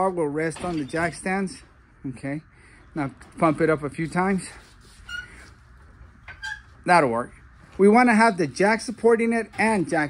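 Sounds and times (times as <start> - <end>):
floor jack squeaks: 4.9 - 5.6, 6.3 - 6.8.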